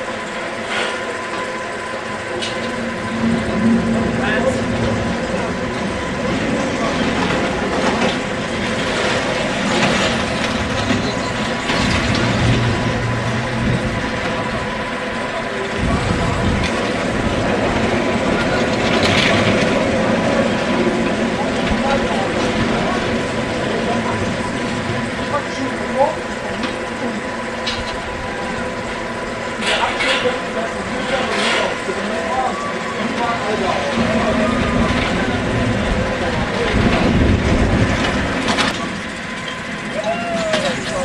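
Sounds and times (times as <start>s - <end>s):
roller coaster rumbling on track: 0.0s - 41.0s.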